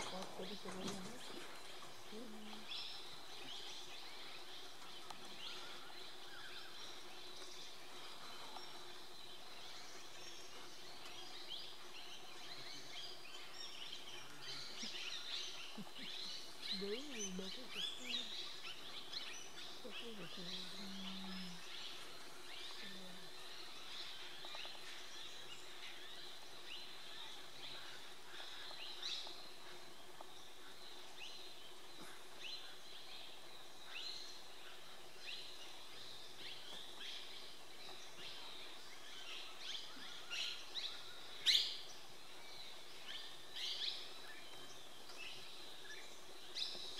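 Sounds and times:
birds chirping: 0.0s - 46.9s.

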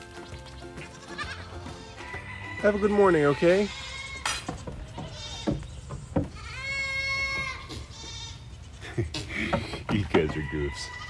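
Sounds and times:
young goat bleating: 0.5s - 9.2s, 10.3s - 11.0s.

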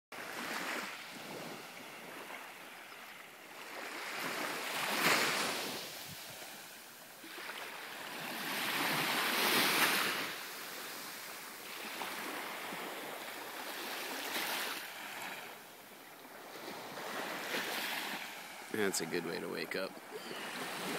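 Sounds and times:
small surf on sandy beach: 0.2s - 20.9s.

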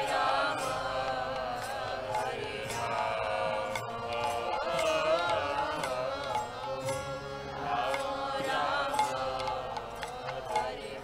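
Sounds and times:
person singing chant-like melody: 0.0s - 11.0s.

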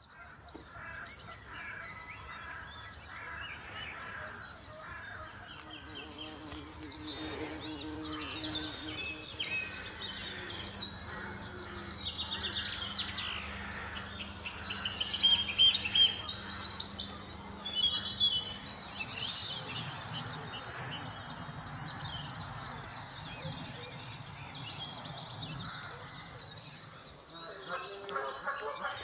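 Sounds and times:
songbirds singing: 0.0s - 29.0s
low bumblebee buzz: 5.5s - 12.7s.

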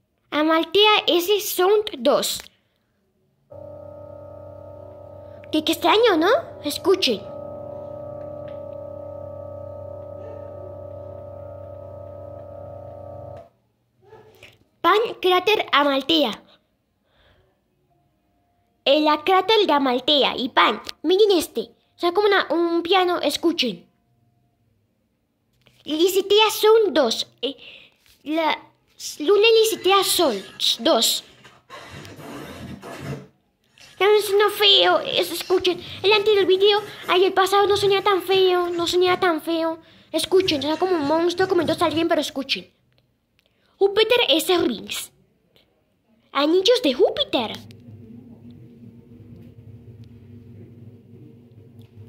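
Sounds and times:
steady drone of held tones: 3.5s - 13.5s
low rumble: 47.7s - 52.0s.

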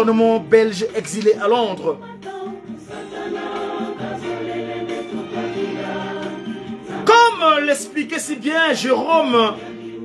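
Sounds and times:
choir singing: 1.4s - 10.0s.

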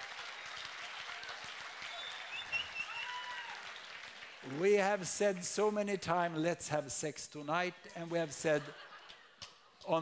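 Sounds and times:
audience applauding: 0.0s - 5.4s.

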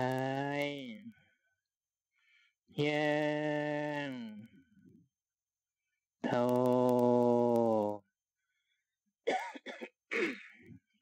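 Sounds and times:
man clearing his throat: 9.3s - 10.7s.

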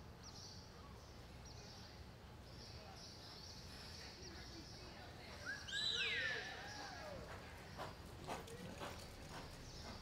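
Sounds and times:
horse hoofbeats on soft dirt: 7.1s - 10.0s.

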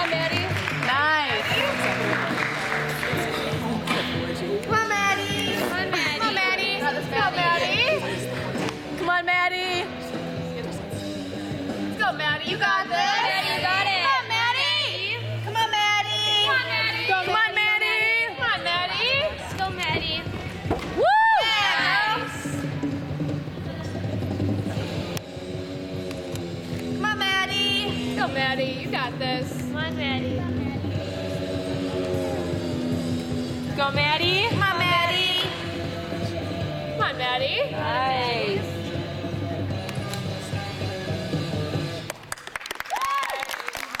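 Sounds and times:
spectators clapping: 0.0s - 4.2s, 42.0s - 44.0s
crowd voices: 0.0s - 42.0s
gymnastics floor music: 0.0s - 42.4s.

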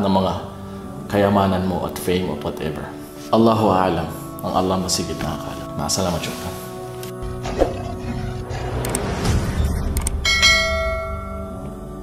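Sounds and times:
metallic bell-like hit ringing: 10.2s - 11.7s.

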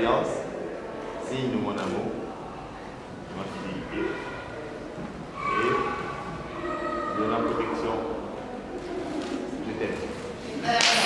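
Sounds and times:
indistinct voices in echoing room: 0.0s - 11.0s.

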